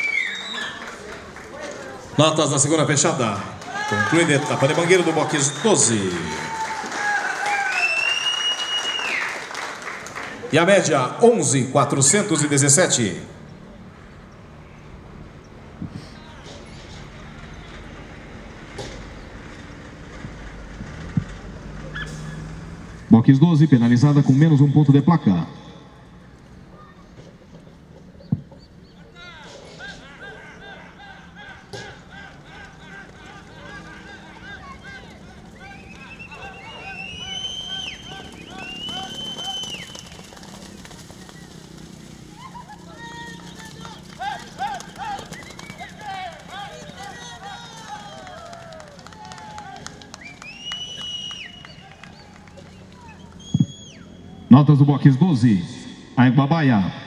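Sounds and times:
people calling and shouting: 0.0s - 8.2s, 10.2s - 56.5s.

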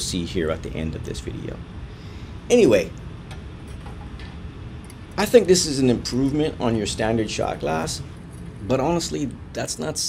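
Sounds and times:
low equipment hum: 0.0s - 10.0s.

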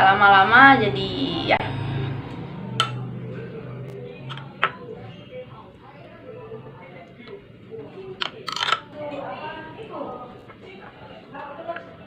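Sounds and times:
metal spoon scraping glass bowl: 8.2s - 8.9s.

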